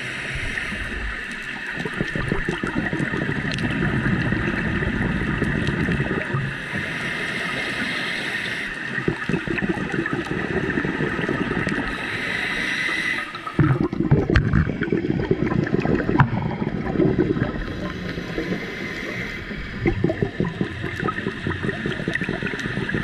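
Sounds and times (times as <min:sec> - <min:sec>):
regulator breathing hiss: 0:00.0 - 0:01.2, 0:06.4 - 0:09.0, 0:11.5 - 0:13.5, 0:17.7 - 0:19.8
exhaled bubbles gurgling: 0:00.0 - 0:23.0.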